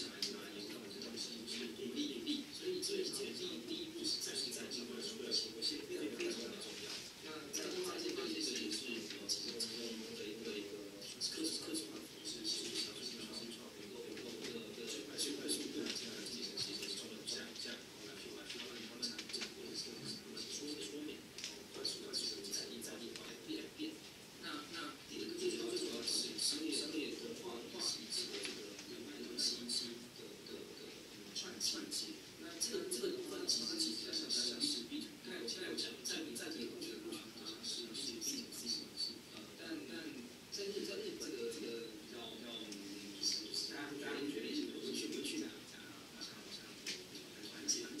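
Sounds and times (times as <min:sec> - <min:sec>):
man talking over loudspeakers: 0:00.0 - 0:48.0.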